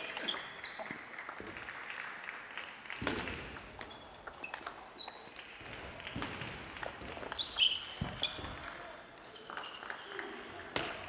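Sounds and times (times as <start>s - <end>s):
table tennis ball clicks: 3.6s - 5.5s.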